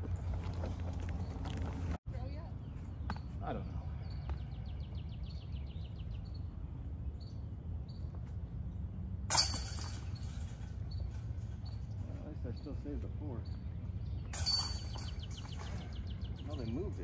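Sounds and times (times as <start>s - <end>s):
disc striking metal chains: 9.3s - 11.6s, 14.3s - 15.4s.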